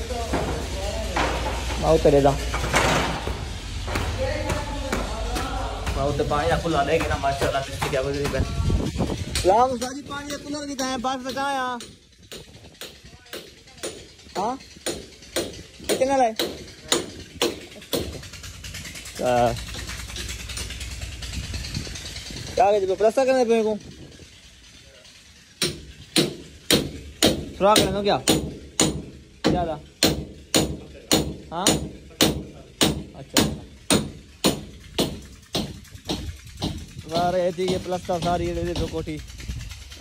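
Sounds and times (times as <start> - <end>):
rapid ticking: 3.6 - 40.0
sharp knocks: 11.2 - 18.4, 25.6 - 39.2
hammer striking chisel into brick: 25.6 - 38.9.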